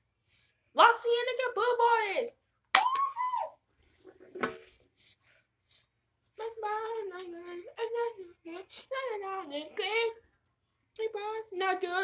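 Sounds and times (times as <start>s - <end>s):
boy's high-pitched whoop: 2.8s - 3.6s.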